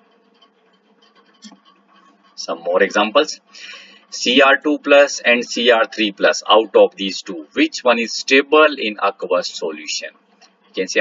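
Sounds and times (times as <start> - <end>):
faint scratchy rustling: 0.0 - 7.0
low steady hum: 0.0 - 11.0.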